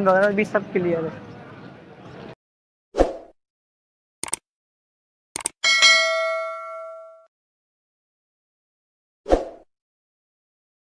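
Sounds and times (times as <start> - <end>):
bright bell ding: 5.6 - 7.3.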